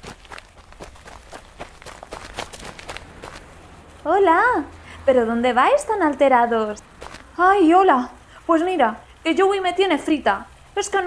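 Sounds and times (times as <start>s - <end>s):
hurried footsteps: 0.0s - 4.8s, 7.0s - 7.3s.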